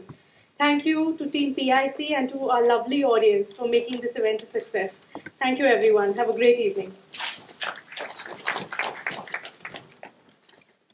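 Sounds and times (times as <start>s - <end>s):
audience getting up: 7.1s - 10.6s.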